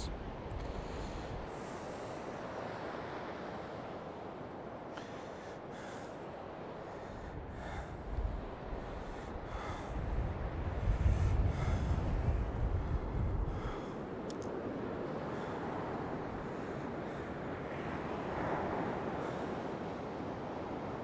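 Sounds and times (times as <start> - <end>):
wind rumble on microphone: 0.0 - 4.9, 5.8 - 21.0
rough surf on sand beach: 0.0 - 21.0.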